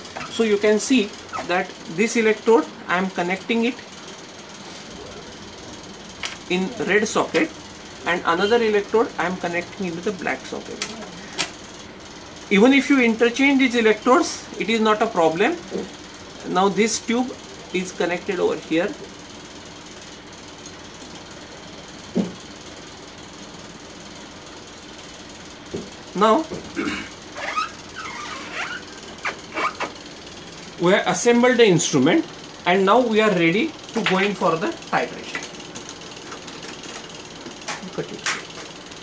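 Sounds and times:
room noise: 0:00.0 - 0:19.4, 0:20.0 - 0:39.0
low machine hum: 0:00.0 - 0:39.0.

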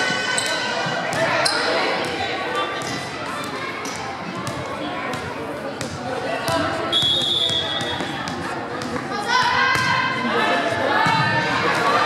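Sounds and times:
chatter of voices: 0:00.0 - 0:12.0
referee's whistle: 0:06.9 - 0:08.1.

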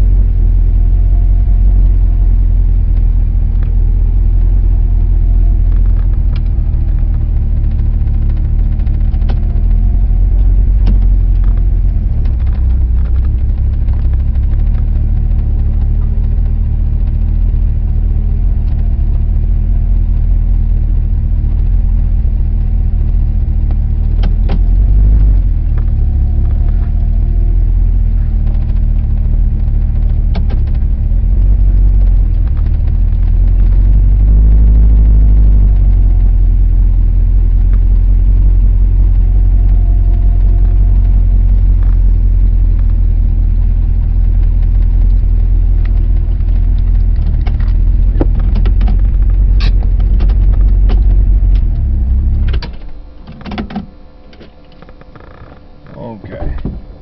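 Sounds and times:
car engine running: 0:00.0 - 0:57.0.

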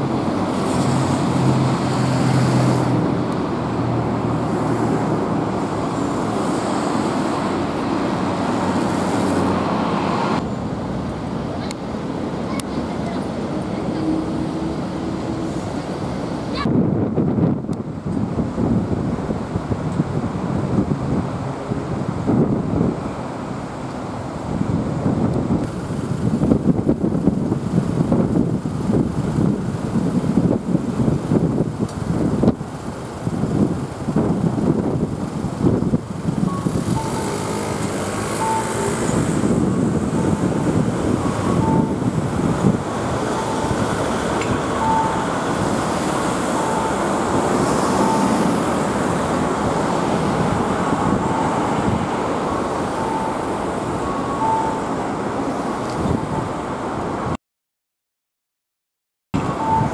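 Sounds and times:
cars and vans moving off: 0:00.0 - 0:57.4, 0:59.4 - 0:59.9
wind gusting on microphone: 0:00.0 - 0:57.4, 0:59.4 - 0:59.9
short faint beeps: 0:36.5 - 0:37.6, 0:38.4 - 0:39.0, 0:41.2 - 0:42.0, 0:44.8 - 0:45.3, 0:48.0 - 0:48.4, 0:53.0 - 0:53.5, 0:54.1 - 0:54.9, 0:59.5 - 0:59.9.

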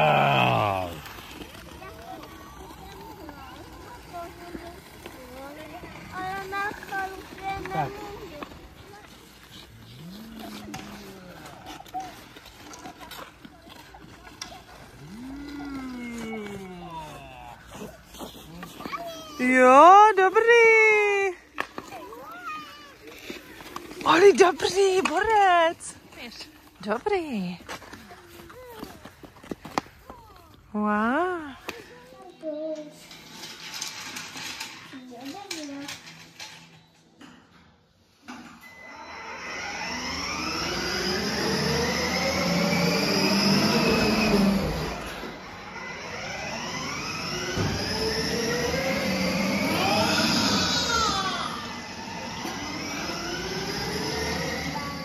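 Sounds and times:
lower voice sliding up in pitch: 0:00.0 - 0:01.0, 0:15.0 - 0:17.4, 0:39.0 - 0:55.0
ice-skate blades clicking and scraping: 0:00.0 - 0:55.0
wooden toy train wheels rattling: 0:00.4 - 0:17.1, 0:32.3 - 0:37.2.

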